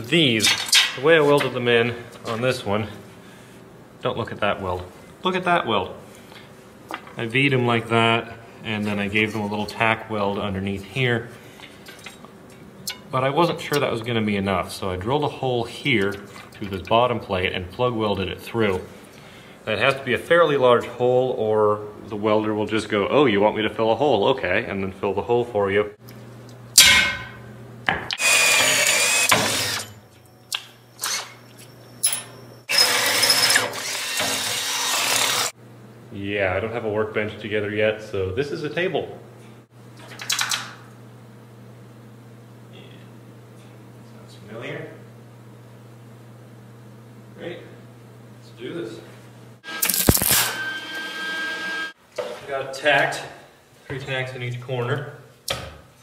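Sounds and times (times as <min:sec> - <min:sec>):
power drill drilling steel: 0:28.2 - 0:29.9, 0:32.7 - 0:35.5
welder arc crackling and buzzing: 0:33.5 - 0:35.6, 0:49.6 - 0:52.0.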